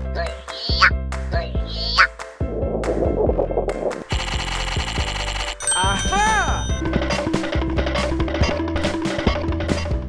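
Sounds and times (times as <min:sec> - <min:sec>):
background music with steady beat: 0:00.0 - 0:10.0
bell-like cartoon chime: 0:05.6 - 0:07.0.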